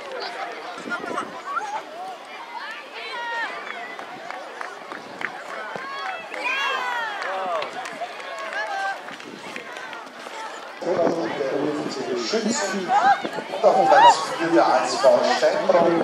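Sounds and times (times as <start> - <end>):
outdoor hubbub: 0.0 - 16.0
children shouting: 5.4 - 10.7.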